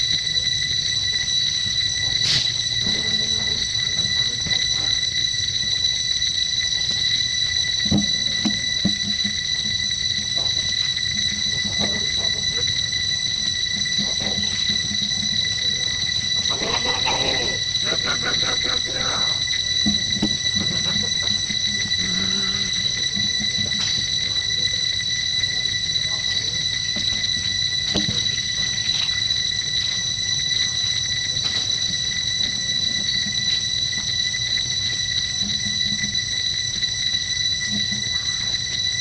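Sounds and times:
high-pitched insect drone: 0.0 - 39.0.

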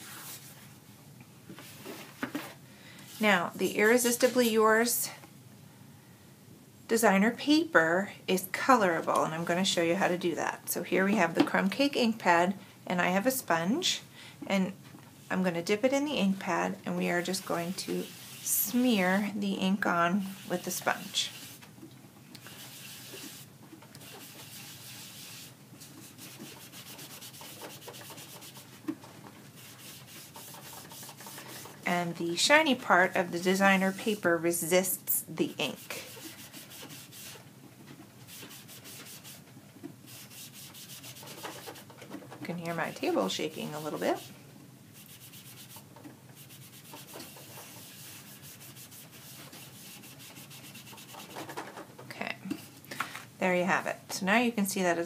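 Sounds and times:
sponge scrubbing paper: 17.0 - 19.3, 20.2 - 21.6, 22.5 - 28.8, 29.5 - 31.9, 32.6 - 34.3, 35.6 - 37.4, 38.2 - 39.4, 40.1 - 41.9, 42.7 - 44.4, 45.0 - 51.5.

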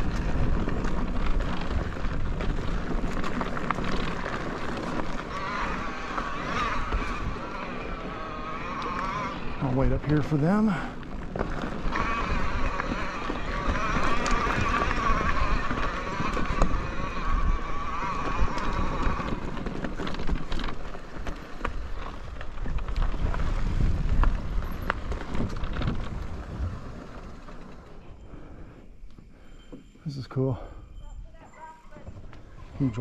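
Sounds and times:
tyres rumbling on dirt trail: 0.0 - 33.0
rattles and clicks: 10.0 - 23.5.

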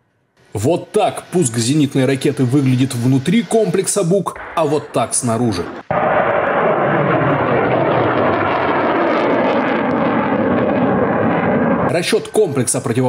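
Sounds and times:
rocket motor rushing: 0.5 - 4.6, 5.6 - 11.9.

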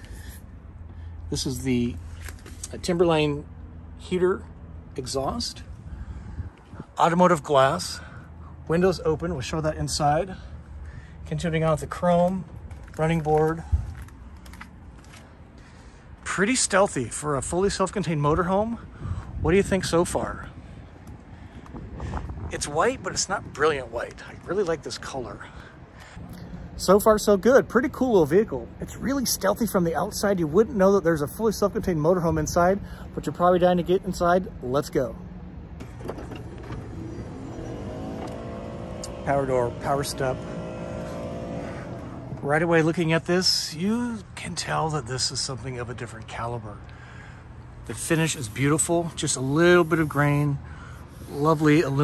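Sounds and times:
electric motor whine: 36.6 - 42.4.

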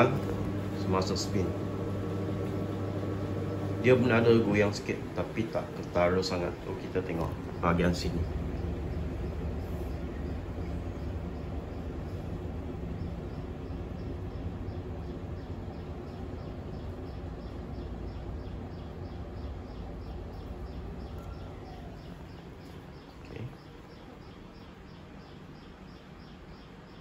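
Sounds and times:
washing machine spin hum: 0.0 - 27.0.

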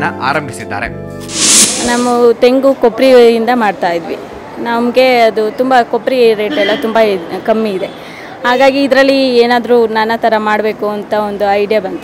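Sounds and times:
short hiss: 1.2 - 2.3.

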